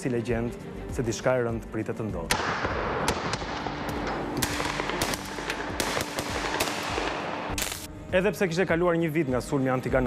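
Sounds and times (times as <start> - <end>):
rifle gunshots: 2.3 - 3.8, 4.4 - 7.9.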